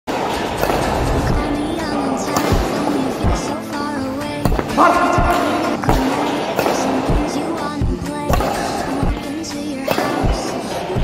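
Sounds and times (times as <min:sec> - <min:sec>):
song with thumping beat: 0:00.2 - 0:11.0.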